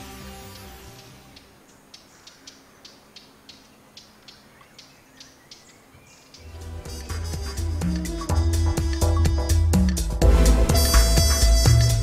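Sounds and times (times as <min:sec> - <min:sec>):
music with deep bass: 0:06.5 - 0:12.0.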